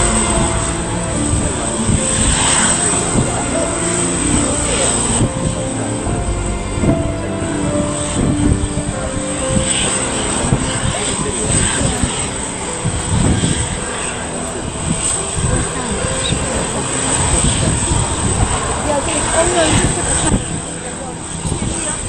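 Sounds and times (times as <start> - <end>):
indistinct voices: 0.0 - 22.0
jet engines rumbling and whining: 0.0 - 22.0.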